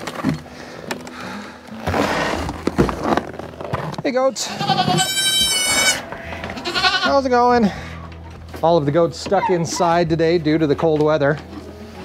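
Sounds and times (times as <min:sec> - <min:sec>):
goat bleating: 0:04.3 - 0:07.3.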